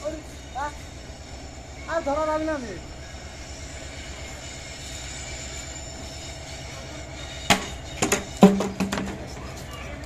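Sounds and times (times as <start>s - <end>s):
distant freight train rumble: 0.0s - 10.0s.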